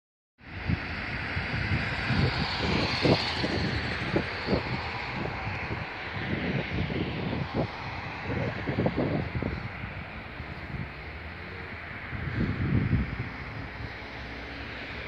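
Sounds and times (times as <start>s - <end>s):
wind buffeting microphone: 0.4s - 15.0s.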